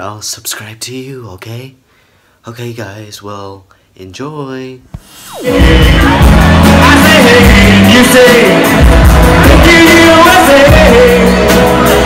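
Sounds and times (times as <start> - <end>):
live band playing pop-rock: 5.3 - 12.0.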